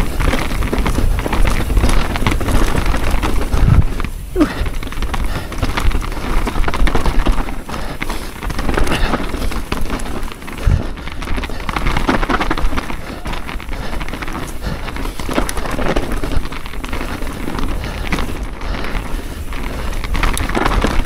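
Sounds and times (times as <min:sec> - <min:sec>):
bike rattling and knocking: 0:00.0 - 0:21.0
bike tyres on dirt: 0:00.0 - 0:21.0.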